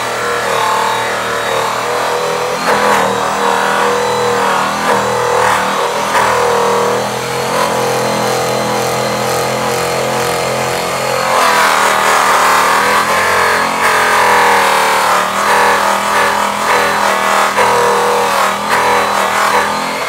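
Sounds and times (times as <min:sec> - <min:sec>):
electric polisher buffing metal: 0:00.0 - 0:20.0.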